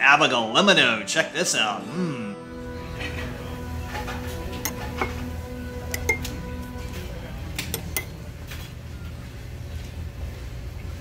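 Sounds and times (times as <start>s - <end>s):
steady low hum: 2.5s - 11.0s
metal spoon clinking ceramic cup: 4.6s - 5.2s, 5.9s - 6.4s, 7.6s - 8.1s.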